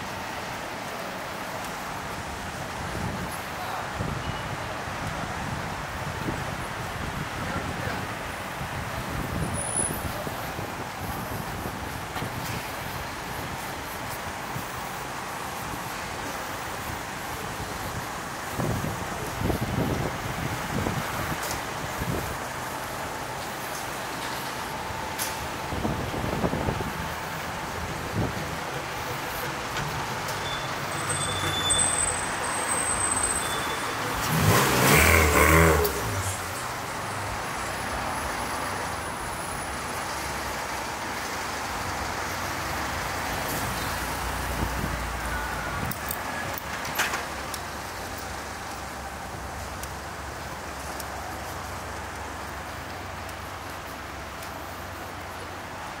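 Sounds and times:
city traffic hum: 0.0s - 56.0s
motor vehicle passing close: 33.9s - 36.6s.

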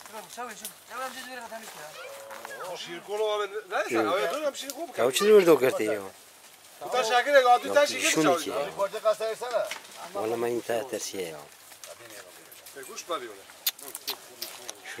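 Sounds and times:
people talking: 6.8s - 15.0s.

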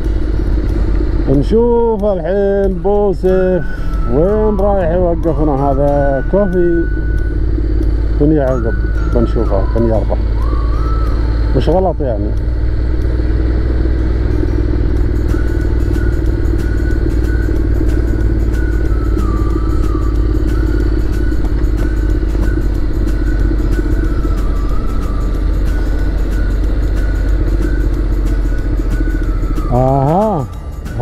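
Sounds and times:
motorcycle engine running: 0.0s - 31.0s.

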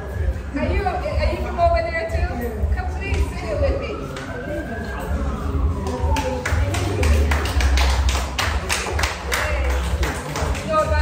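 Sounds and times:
rhythmic hand clapping: 3.0s - 3.4s, 5.6s - 11.0s.

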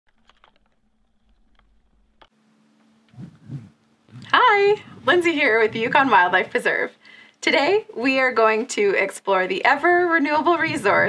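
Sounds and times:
low hum: 0.5s - 7.4s.

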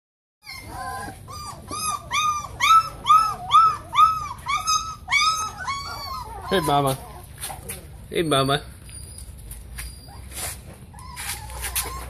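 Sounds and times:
dog whining: 0.4s - 12.0s.

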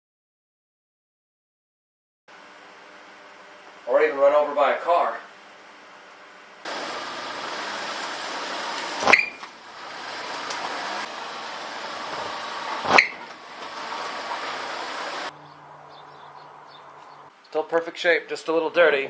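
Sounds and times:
outdoor noise: 5.0s - 19.0s
car rolling over concrete: 6.7s - 15.3s.

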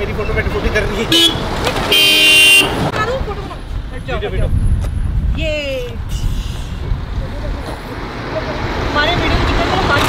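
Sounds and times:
people talking: 7.2s - 10.0s.

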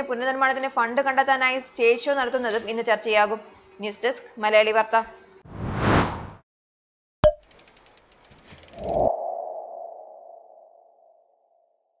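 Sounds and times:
ticking clicks: 7.2s - 9.2s.

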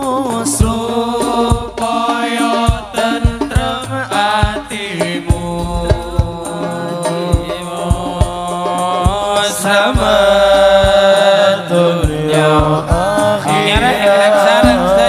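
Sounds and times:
frame drum beat: 0.0s - 15.0s
men singing together: 0.0s - 15.0s.

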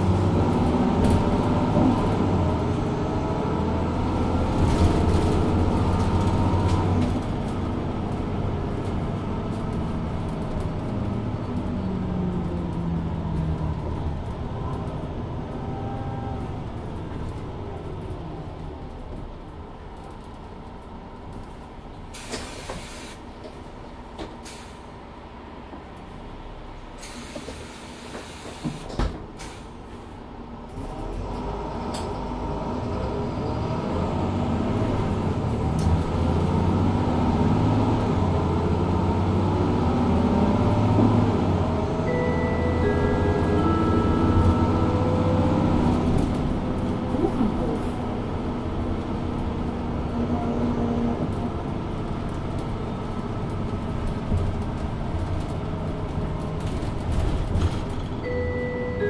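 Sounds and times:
bus diesel engine pulling hard: 0.0s - 59.0s
descending electronic chime: 42.1s - 45.3s.

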